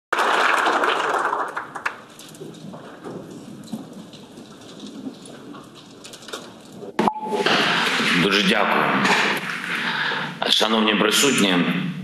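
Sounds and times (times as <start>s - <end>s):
crowd applause: 0.1s - 2.1s
scattered claps: 0.1s - 5.2s.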